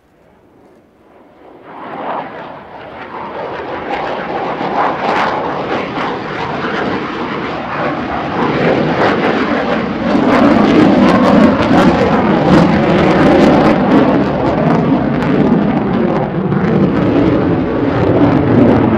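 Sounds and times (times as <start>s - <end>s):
fighter jet engines roaring: 0.0s - 18.9s.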